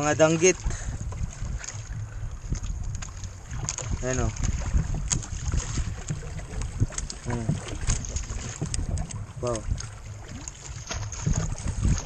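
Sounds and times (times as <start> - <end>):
water against boat: 0.0 - 12.0
wind buffeting microphone: 0.0 - 12.0.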